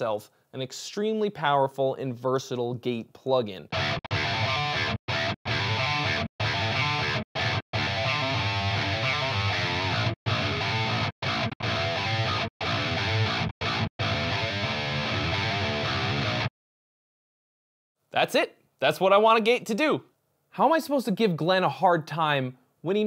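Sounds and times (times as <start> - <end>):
distorted electric guitar riff: 3.7 - 16.5.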